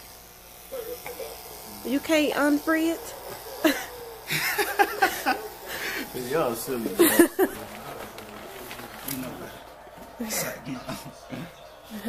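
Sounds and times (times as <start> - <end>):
electric hair clippers buzzing: 0.0 - 11.1.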